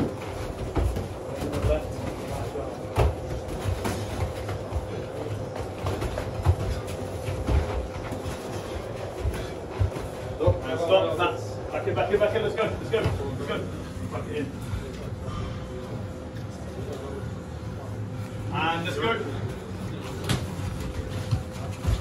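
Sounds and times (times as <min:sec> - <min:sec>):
bare feet shuffling on mats: 0:00.0 - 0:10.9, 0:19.9 - 0:22.0.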